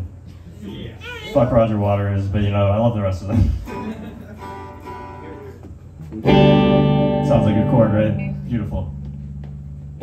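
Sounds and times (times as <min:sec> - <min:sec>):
electric guitar being tuned: 0:04.4 - 0:10.0.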